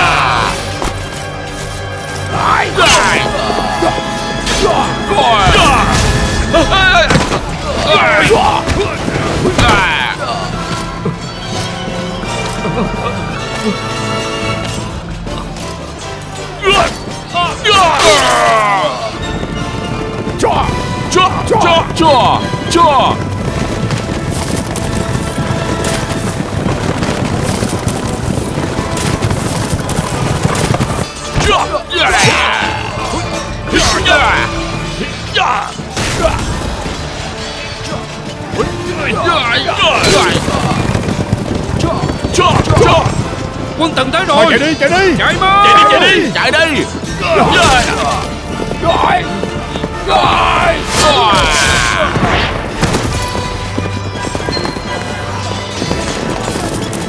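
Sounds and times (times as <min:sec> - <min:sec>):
cavalry charge rumble: 0:00.0 - 0:57.0
dramatic orchestral score: 0:00.0 - 0:57.0
horse hoofbeats galloping: 0:17.9 - 0:35.2, 0:36.6 - 0:57.0.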